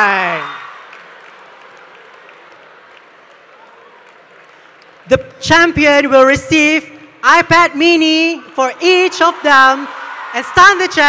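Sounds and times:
audience applauding: 0.0 - 5.1.

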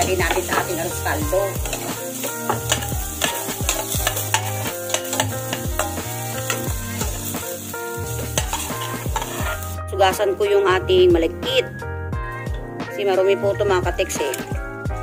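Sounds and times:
metal spoon scraping pan: 0.0 - 9.8
food sizzling in oil: 0.0 - 10.9, 13.9 - 15.0.

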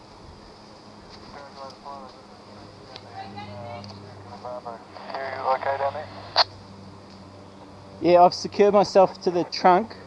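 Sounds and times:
man's voice over two-way radio: 1.3 - 2.1, 4.3 - 6.4, 8.5 - 9.9
pilot speaking: 1.3 - 6.5, 8.0 - 10.0.

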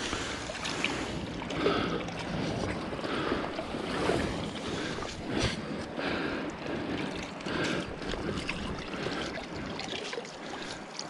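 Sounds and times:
stream water sloshing and splashing: 0.0 - 11.0.

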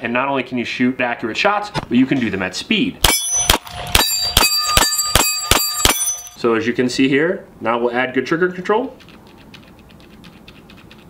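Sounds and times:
pistol shots: 3.0 - 6.4
steel targets ringing: 3.0 - 6.4.

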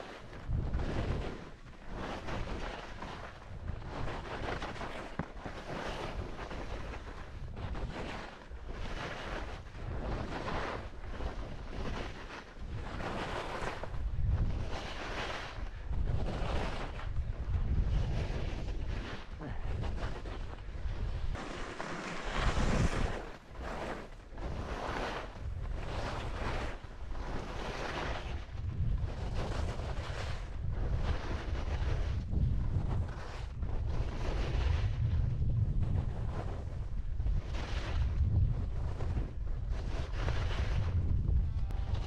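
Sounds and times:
skis scraping over snow: 0.0 - 42.0
wind on microphone: 0.0 - 42.0.

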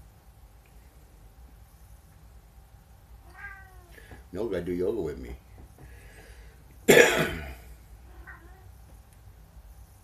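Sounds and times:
person coughing: 6.9 - 7.7.

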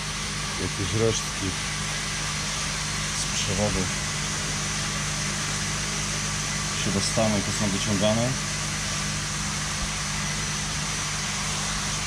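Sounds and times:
constant hiss: 0.0 - 12.0
machine humming: 0.0 - 12.0.

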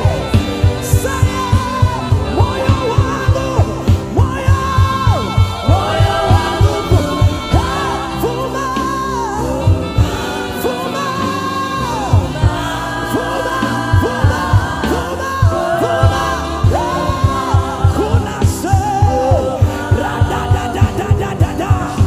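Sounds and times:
women backing singers: 0.0 - 21.2
man singing into microphone: 0.0 - 22.0
steady drum beat: 0.0 - 22.0.

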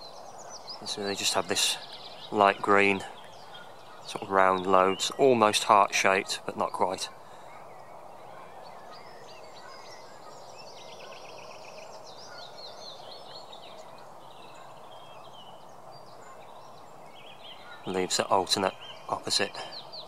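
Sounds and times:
bird trill: 0.0 - 20.0
outdoor background noise: 0.0 - 20.0
small birds singing: 0.0 - 20.0.

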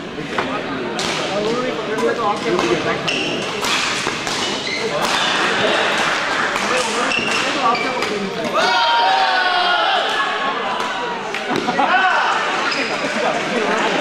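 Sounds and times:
murmur of crowd voices: 0.0 - 14.0
rackets hitting shuttlecocks: 0.4 - 8.6
shoes squeaking on floor: 3.0 - 5.4, 7.0 - 8.2.

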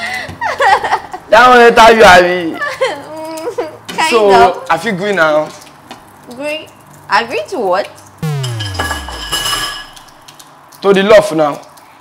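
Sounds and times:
falling comedic tone: 8.2 - 10.2.

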